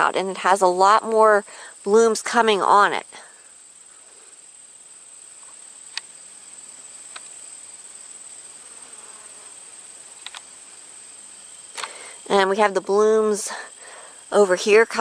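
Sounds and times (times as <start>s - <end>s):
insects trilling: 0.0s - 15.0s
faint clicks: 10.2s - 10.5s, 11.7s - 12.0s.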